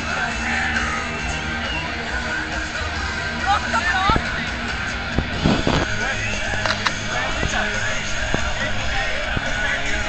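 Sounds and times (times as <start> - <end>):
concert music over loudspeakers: 0.0 - 10.0
crowd cheering and shouting: 0.0 - 10.0.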